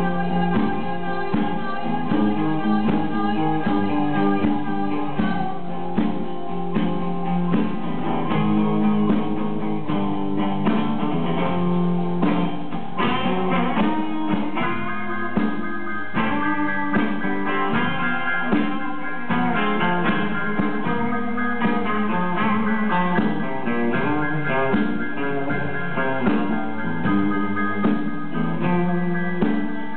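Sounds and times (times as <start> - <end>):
drums: 0.0 - 29.9
electric guitar: 0.0 - 29.9
strummed acoustic guitar: 0.0 - 29.9.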